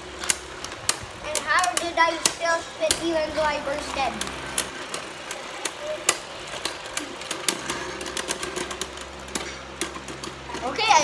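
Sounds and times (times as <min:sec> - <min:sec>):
spinning tops clashing: 0:00.0 - 0:11.0
person speaking: 0:01.2 - 0:04.6.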